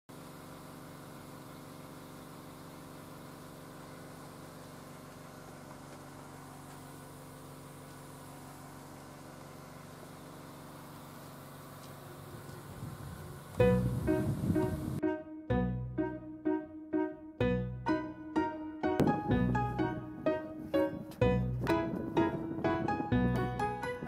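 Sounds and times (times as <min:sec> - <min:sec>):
mechanical hum: 0:00.2 - 0:15.0.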